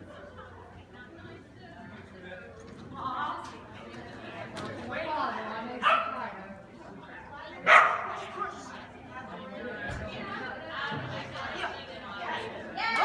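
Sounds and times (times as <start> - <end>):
murmur of people talking: 0.0 - 13.0
dog barking: 5.8 - 6.2, 7.6 - 8.2.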